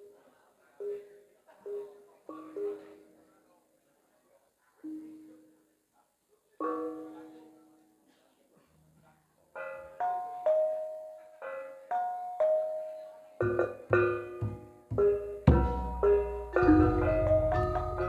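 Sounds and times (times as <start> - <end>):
bronze gamelan notes ringing: 9.6 - 18.0
drum strokes: 13.4 - 18.0.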